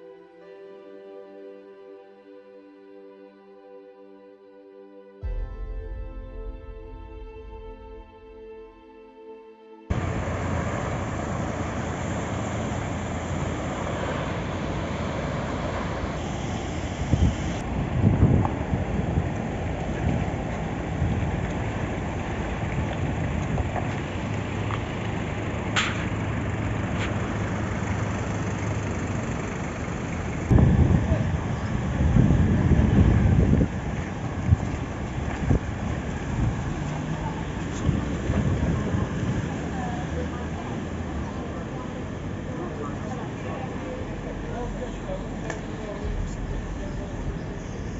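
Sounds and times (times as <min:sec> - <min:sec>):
floodwater rushing: 0:09.9 - 0:47.9
wind on microphone: 0:14.4 - 0:24.2, 0:30.5 - 0:37.0, 0:37.6 - 0:39.9, 0:46.0 - 0:47.9.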